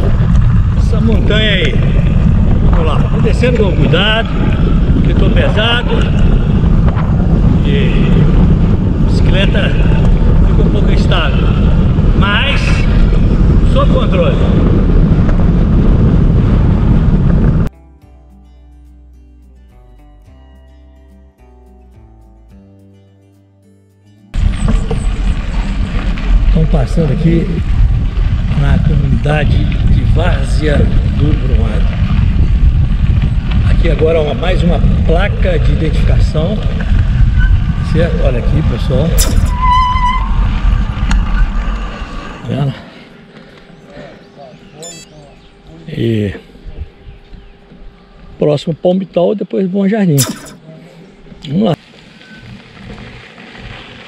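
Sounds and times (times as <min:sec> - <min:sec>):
bicycle tyres on dirt road: 0:00.0 - 0:17.7, 0:24.3 - 0:44.1, 0:51.8 - 0:54.0
wind buffeting microphone: 0:00.0 - 0:17.7, 0:24.4 - 0:42.3
quiet music with long held notes: 0:17.7 - 0:24.4
brake squeal: 0:37.2 - 0:37.8, 0:39.2 - 0:42.4.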